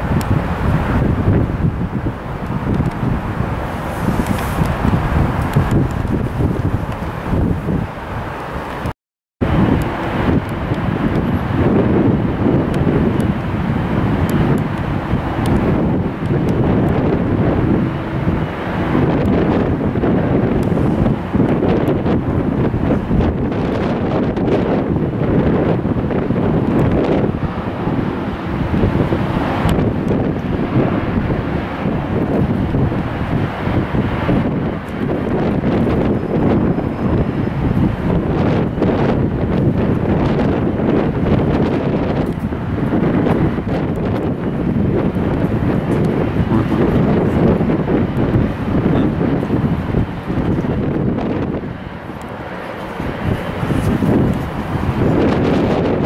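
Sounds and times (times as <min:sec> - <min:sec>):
wind buffeting microphone: 0:00.0 - 0:56.0.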